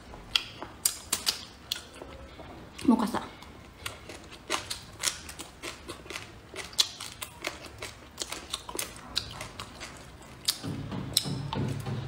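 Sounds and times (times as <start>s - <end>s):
person chewing: 0.0s - 12.0s.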